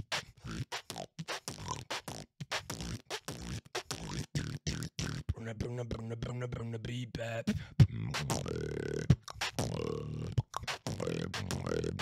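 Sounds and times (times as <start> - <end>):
man beatboxing: 0.0 - 12.0.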